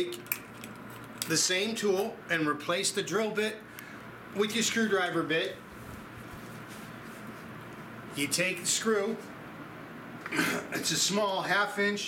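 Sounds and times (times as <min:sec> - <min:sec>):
steady low hiss: 0:01.1 - 0:12.0.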